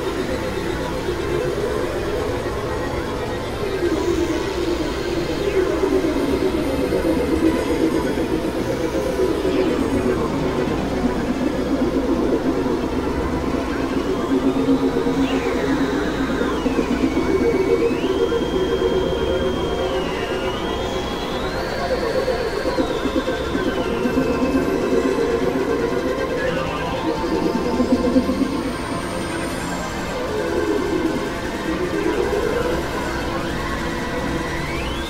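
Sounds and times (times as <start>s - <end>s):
synthesizer drone music: 0.0s - 35.0s.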